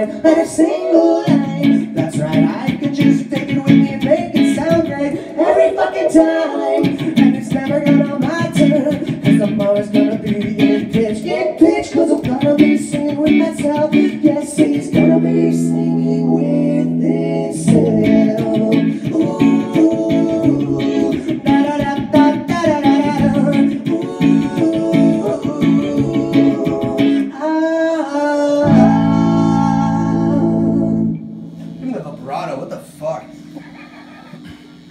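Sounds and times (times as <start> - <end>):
person singing: 0.0 - 32.1
electric guitar through amplifier: 6.8 - 27.3, 28.6 - 34.9.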